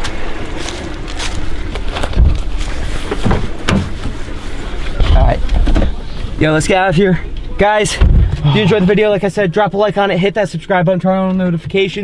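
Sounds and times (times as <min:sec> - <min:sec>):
footsteps on dry leaves: 0:00.0 - 0:03.6
low rumble: 0:00.0 - 0:10.5
thumps and knocks: 0:02.1 - 0:02.5, 0:03.1 - 0:04.2, 0:08.0 - 0:08.5.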